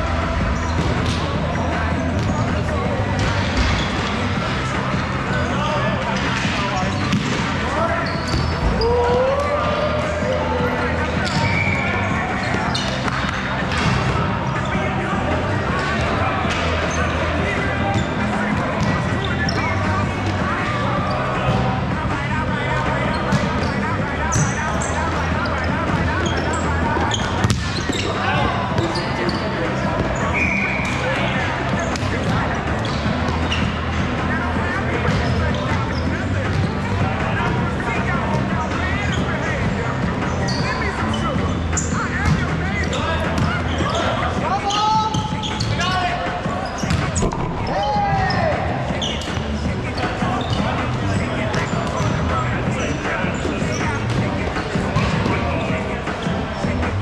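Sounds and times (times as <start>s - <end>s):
players calling out and talking: 0.0s - 57.0s.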